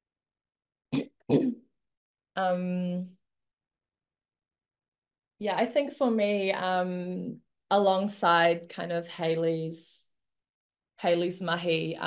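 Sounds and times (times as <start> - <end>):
woman clearing her throat: 0.9 - 1.6.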